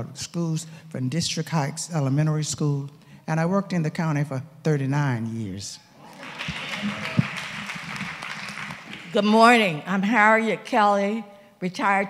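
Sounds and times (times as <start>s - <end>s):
congregation applauding: 6.0s - 9.4s.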